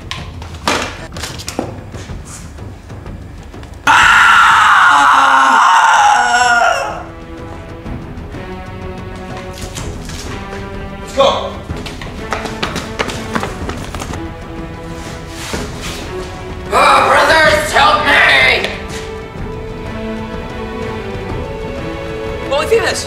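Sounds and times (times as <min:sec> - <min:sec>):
background music: 0:00.0 - 0:23.0
person screaming in pain: 0:03.9 - 0:07.0.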